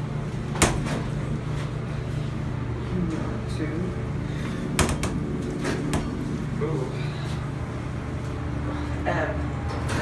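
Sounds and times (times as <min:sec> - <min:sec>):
elevator mechanical hum: 0:00.0 - 0:10.0.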